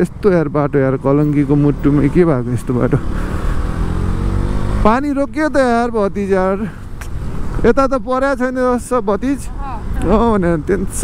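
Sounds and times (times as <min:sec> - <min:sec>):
motorcycle engine accelerating: 0:00.0 - 0:06.5
wind and road noise: 0:00.0 - 0:11.0.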